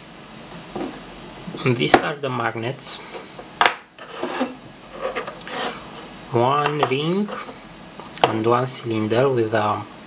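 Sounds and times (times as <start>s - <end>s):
metal parts scraping on wood: 4.0s - 6.0s.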